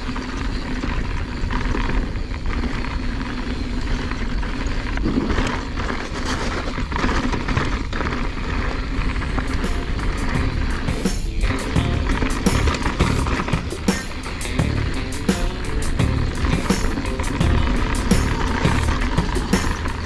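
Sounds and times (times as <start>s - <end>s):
bike clicks and rattles: 0.0s - 20.0s
wind rumble on microphone: 0.0s - 20.0s
music playing: 9.5s - 20.0s.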